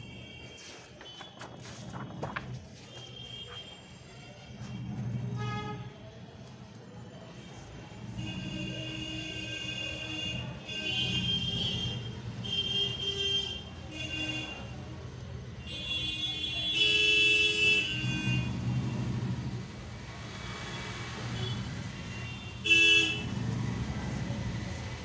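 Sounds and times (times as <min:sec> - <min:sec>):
road traffic engine rumble: 0:00.4 - 0:25.0
vehicle horn blasts: 0:22.2 - 0:23.3.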